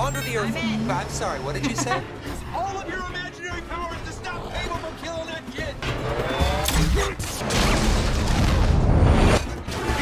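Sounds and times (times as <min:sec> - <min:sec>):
soundtrack music: 0:00.0 - 0:10.0
vehicle engine revving: 0:05.8 - 0:07.0.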